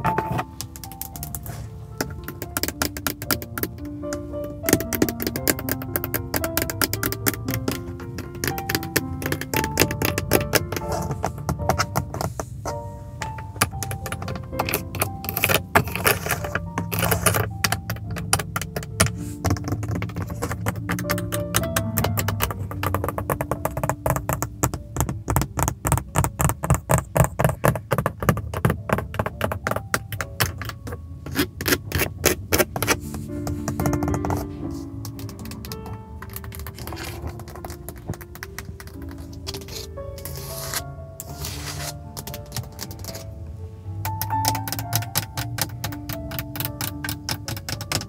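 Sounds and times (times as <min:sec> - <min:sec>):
fingernails tapping on plastic: 0:00.0 - 0:40.5, 0:41.7 - 0:43.2, 0:44.0 - 0:48.0
soft spa-style music: 0:00.0 - 0:48.0.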